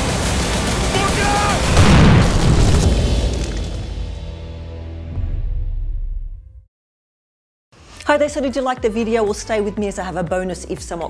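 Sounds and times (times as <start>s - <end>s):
deep explosion boom: 0.8s - 4.4s.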